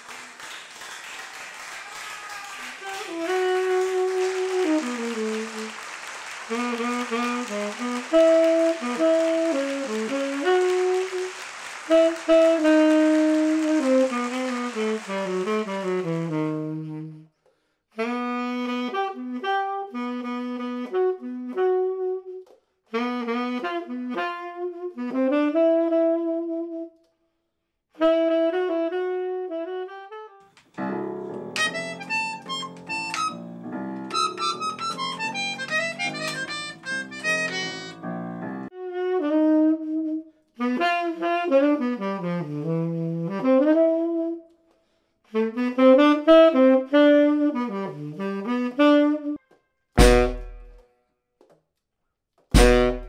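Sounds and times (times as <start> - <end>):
jazz saxophone playing: 2.4 - 27.0, 28.0 - 44.6, 45.3 - 50.9, 52.6 - 53.0.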